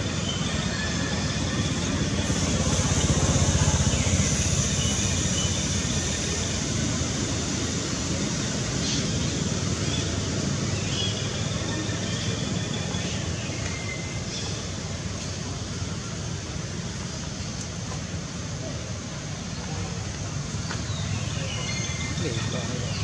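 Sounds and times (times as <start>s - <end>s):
outdoor background rumble: 0.0s - 23.0s.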